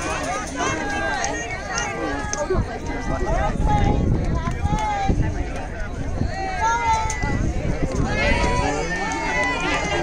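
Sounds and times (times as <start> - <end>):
overlapping voices chattering: 0.0 - 10.0
wind rumble on microphone: 0.0 - 10.0.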